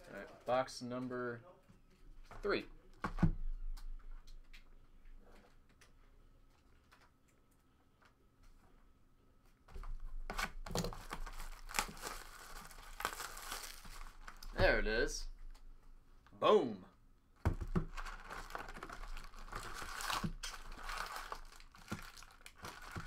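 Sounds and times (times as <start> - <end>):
plastic wrap tearing and crinkling: 10.4 - 14.6, 17.7 - 23.0.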